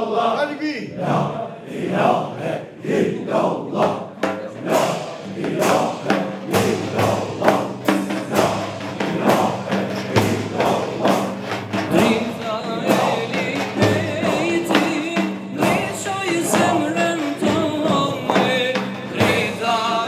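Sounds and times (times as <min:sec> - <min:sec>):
men chanting in unison: 0:00.0 - 0:20.0
frame drums beating: 0:03.2 - 0:20.0.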